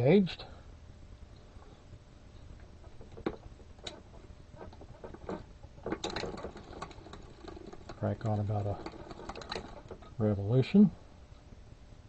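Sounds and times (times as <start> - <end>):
metallic clicks of sock machine: 5.0 - 10.2.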